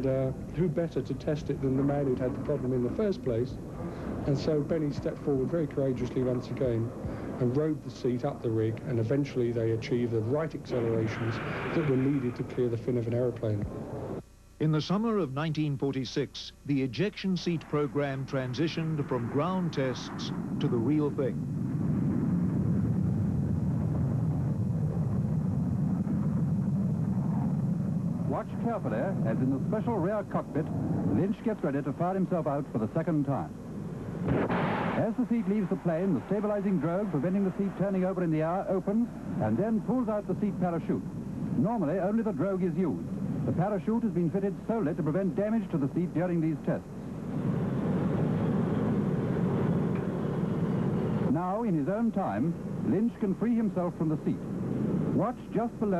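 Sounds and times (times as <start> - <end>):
airplane in flight drone: 0.0 - 14.2, 17.2 - 55.9
jet engines low rumble: 0.0 - 55.9.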